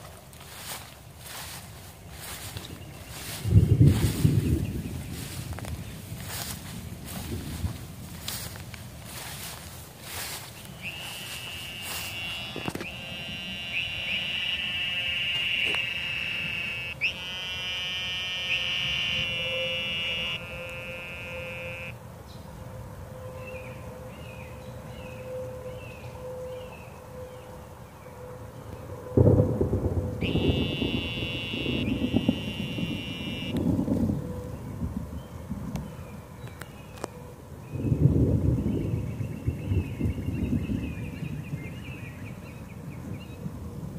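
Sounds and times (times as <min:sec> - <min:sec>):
wind rumble on microphone: 0:00.0 - 0:16.6, 0:28.4 - 0:43.9
cicadas buzzing: 0:02.2 - 0:22.0, 0:30.2 - 0:33.7.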